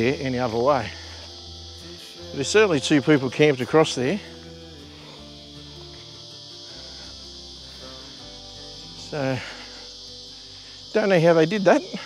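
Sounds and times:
high-pitched insect chorus: 0.0s - 12.0s
soft music of sustained chords: 0.0s - 12.0s.

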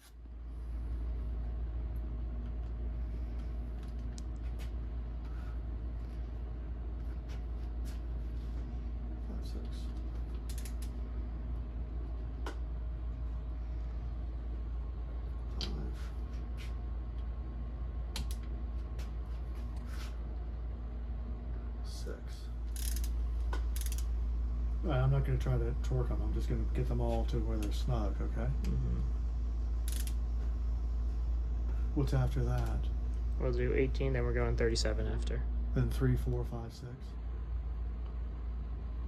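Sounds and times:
low hum: 0.0s - 39.0s
hand ratchet creaking and clicking: 10.3s - 10.9s, 22.7s - 24.1s, 29.9s - 30.2s.

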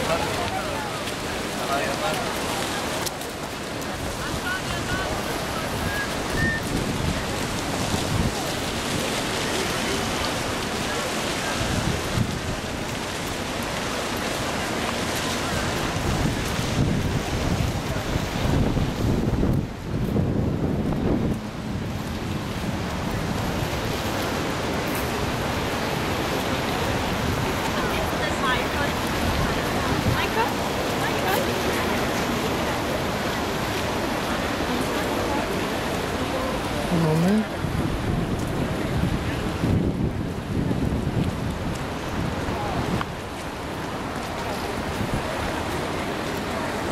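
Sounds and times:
wind buffeting microphone: 0.0s - 35.0s, 36.6s - 46.9s.

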